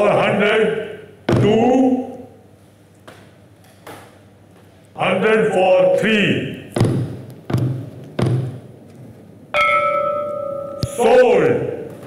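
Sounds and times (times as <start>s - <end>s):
wooden gavel knocking: 6.8s - 8.6s
bell-like tone ringing: 9.6s - 11.2s.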